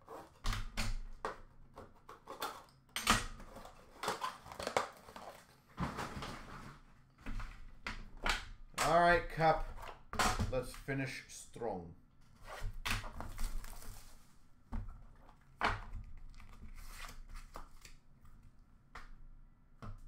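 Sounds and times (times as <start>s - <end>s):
person speaking: 8.8s - 9.8s, 10.4s - 12.0s.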